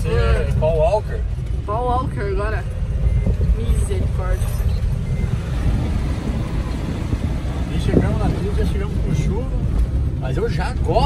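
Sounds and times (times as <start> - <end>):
van engine and tyre drone: 0.0 - 11.0.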